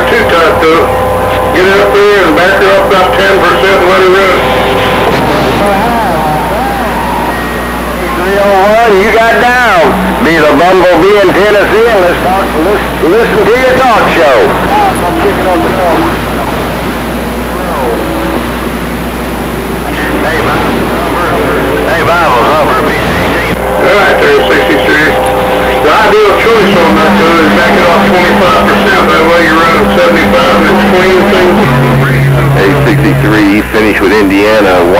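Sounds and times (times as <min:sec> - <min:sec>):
steady hum: 0:00.0 - 0:34.9
steady tone: 0:00.0 - 0:34.9
radio hiss and static: 0:07.4 - 0:34.9
distorted radio voice: 0:19.7 - 0:34.9.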